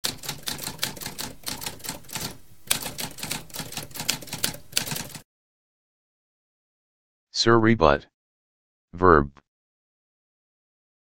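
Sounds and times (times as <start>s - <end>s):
typewriter typing: 0.0s - 5.2s.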